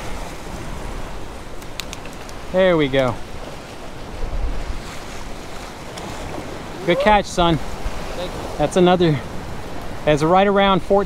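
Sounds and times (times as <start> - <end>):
surf washing against rocks: 0.0 - 11.0
wind buffeting microphone: 0.0 - 11.0.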